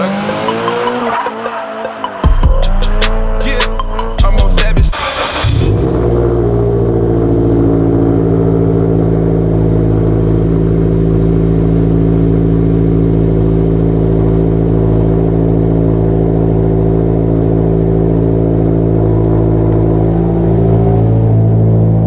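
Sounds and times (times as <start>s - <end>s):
sports car engine idling: 1.7s - 22.0s.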